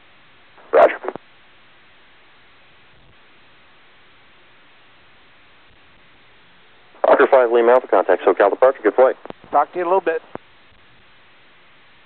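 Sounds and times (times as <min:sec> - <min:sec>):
radio hiss: 0:00.6 - 0:01.2, 0:06.8 - 0:11.0
spoken radio transmission: 0:00.6 - 0:01.2, 0:07.0 - 0:10.4.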